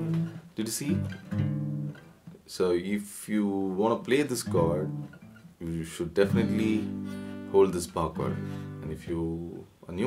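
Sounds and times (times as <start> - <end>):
man speaking: 0.6 - 1.1, 2.4 - 10.0
acoustic guitar chord ringing: 6.2 - 8.8.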